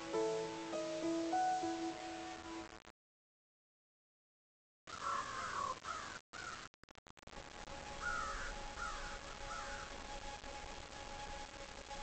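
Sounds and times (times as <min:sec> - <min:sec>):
steady hiss: 0:00.0 - 0:02.7
bird calling: 0:08.0 - 0:09.9.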